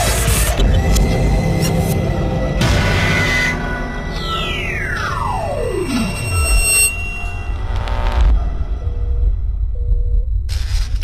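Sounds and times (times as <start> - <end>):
low rumbling drone: 0.6 - 10.8
electronic tone sweeping down: 4.1 - 8.6.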